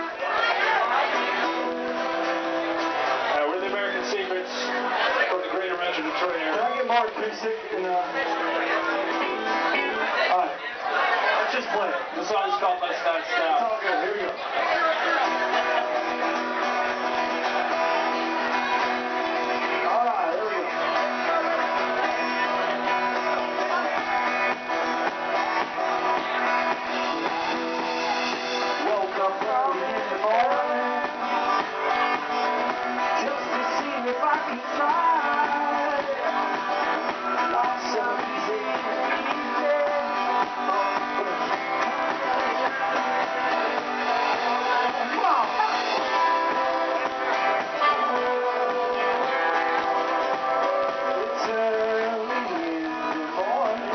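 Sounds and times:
strummed acoustic guitars: 0.0 - 53.9
live band playing a song: 14.5 - 53.9.

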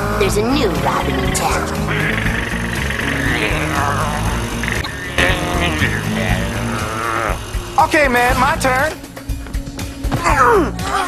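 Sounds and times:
dramatic cartoon music: 0.0 - 11.0.

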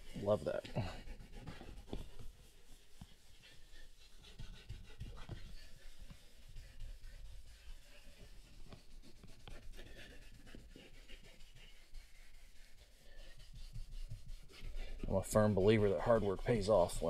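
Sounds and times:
brush scrubbing leather: 0.0 - 17.0.

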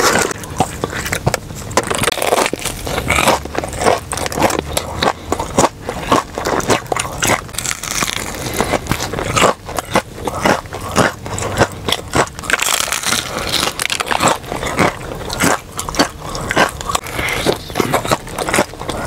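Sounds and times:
crunchy chewing of fried chicken: 0.0 - 19.0.

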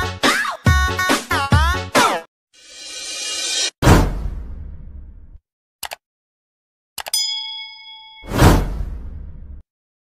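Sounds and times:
bright bell ding: 7.1 - 8.6.

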